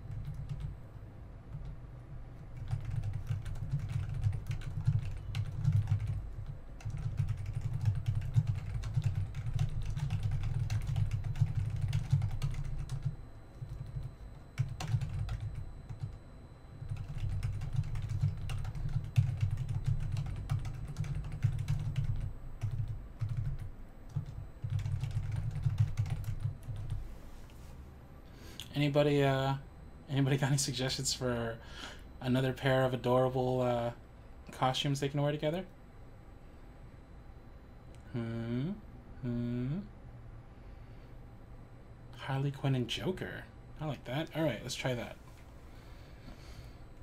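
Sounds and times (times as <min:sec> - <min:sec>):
typing on computer keyboard: 0:00.1 - 0:00.7, 0:02.6 - 0:16.1, 0:16.8 - 0:27.0.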